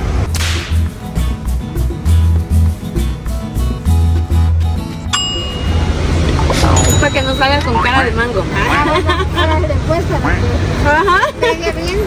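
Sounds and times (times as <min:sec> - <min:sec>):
music with pulsing bass beat: 0:00.3 - 0:07.0
swoosh sound effect: 0:05.6 - 0:07.9.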